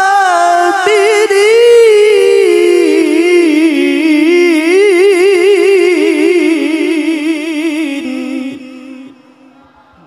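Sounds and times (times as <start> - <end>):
man reciting melodically: 0.0 - 9.6.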